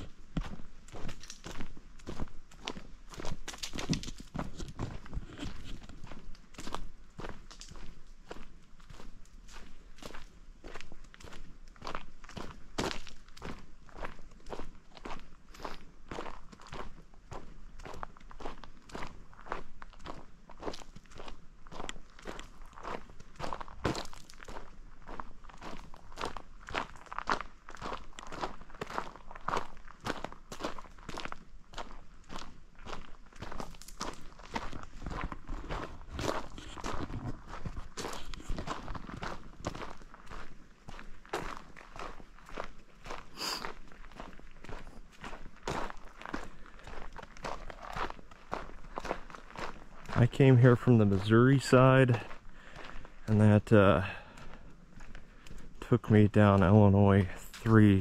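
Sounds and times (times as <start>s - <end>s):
footsteps on dirt trail: 0.0s - 58.0s.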